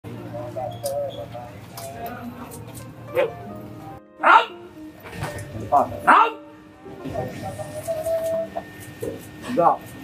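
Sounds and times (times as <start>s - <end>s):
background music: 1.5s - 8.8s
man barking command: 4.2s - 4.6s, 6.0s - 6.5s.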